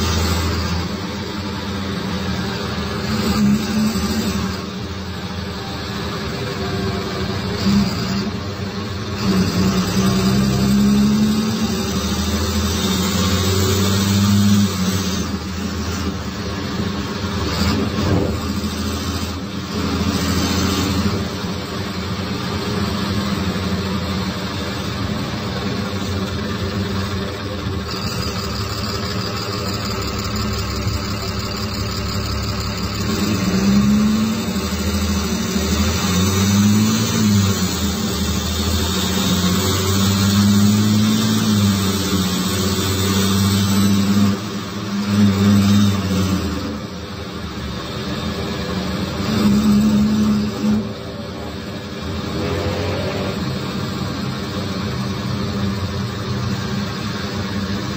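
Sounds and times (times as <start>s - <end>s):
bus diesel engine revving: 0.0s - 57.9s.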